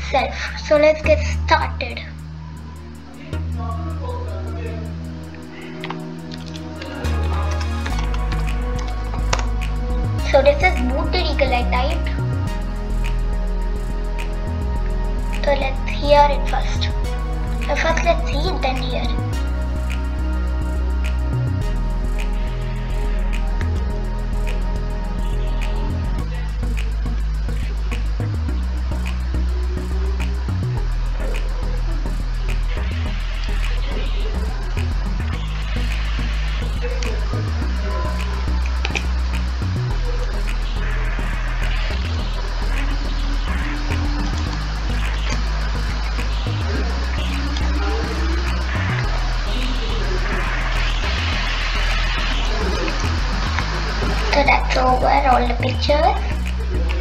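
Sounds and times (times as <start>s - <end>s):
music with deep bass line: 0.0s - 57.0s.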